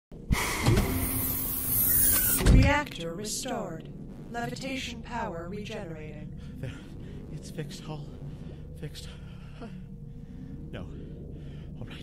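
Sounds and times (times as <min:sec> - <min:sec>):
steady hum: 0:00.2 - 0:12.0.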